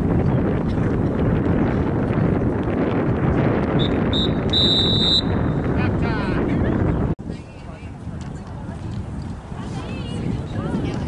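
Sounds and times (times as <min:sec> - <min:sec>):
wind buffeting microphone: 0:00.0 - 0:11.0
referee's whistle blasts: 0:03.8 - 0:05.5.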